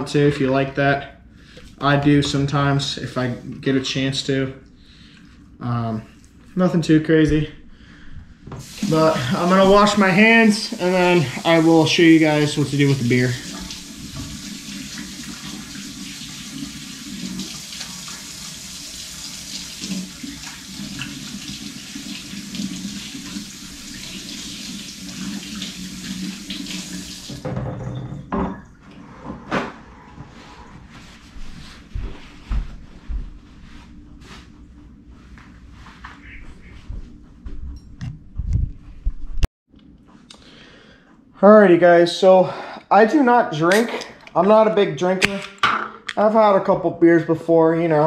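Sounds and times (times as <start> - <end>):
faucet water running: 8.6 - 27.6
objects knocking and clattering: 27.4 - 28.7.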